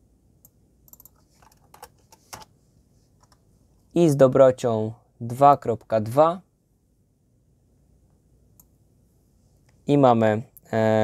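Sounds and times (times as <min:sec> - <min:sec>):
keyboard and mouse clicks: 0:00.4 - 0:02.5.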